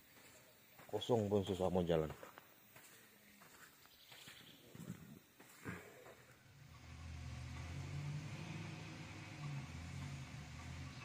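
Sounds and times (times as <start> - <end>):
heavy diesel engine running: 6.6 - 11.0.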